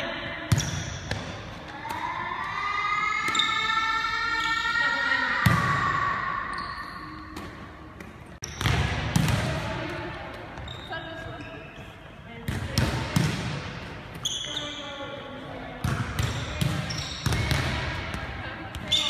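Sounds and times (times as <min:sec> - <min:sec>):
ball bouncing on gym floor: 0:00.5 - 0:02.1, 0:07.2 - 0:14.7, 0:15.7 - 0:19.0.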